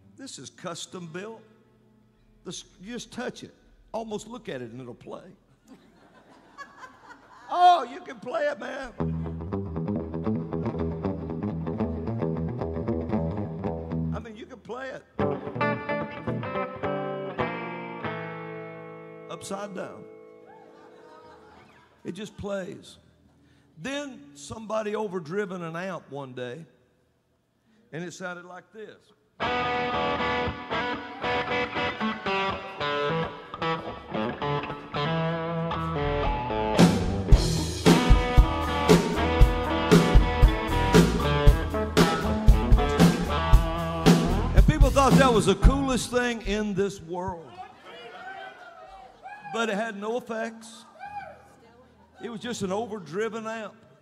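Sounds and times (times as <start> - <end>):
electric guitar playing: 9.0 - 14.2, 15.2 - 20.5, 29.4 - 46.2
low bass part: 35.6 - 46.0.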